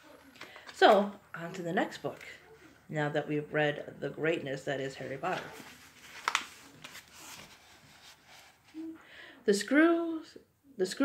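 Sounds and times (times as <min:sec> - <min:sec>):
book pages rustling: 0:05.0 - 0:08.9.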